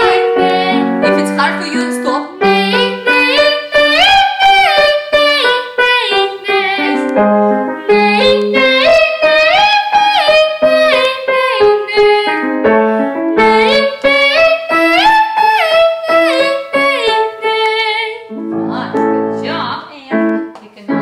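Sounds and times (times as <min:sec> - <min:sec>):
grand piano chords: 0:00.0 - 0:21.0.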